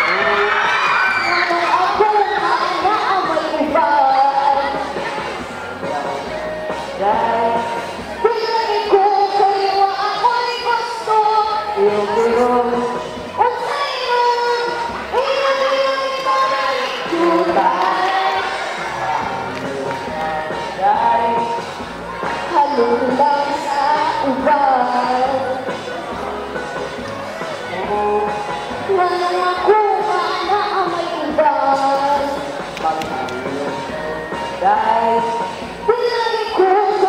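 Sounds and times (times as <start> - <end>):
girl and boy singing duet: 0.0 - 6.3, 7.0 - 21.6, 22.5 - 25.6, 28.9 - 33.2, 34.6 - 37.0
recorded backing music: 0.0 - 37.0.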